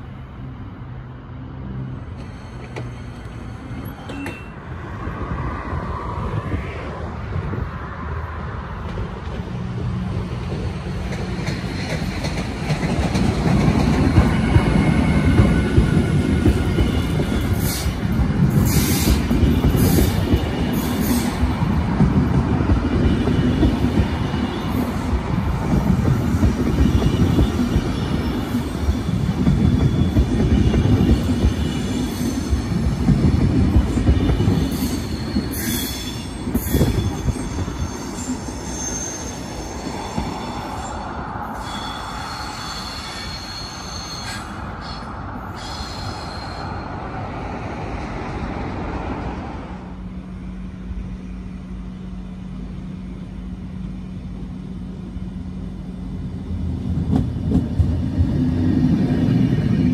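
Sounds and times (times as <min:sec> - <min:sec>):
train wheels rumbling on rails: 0:01.6 - 0:59.9
high-pitched wheel squeal: 0:34.2 - 0:47.2.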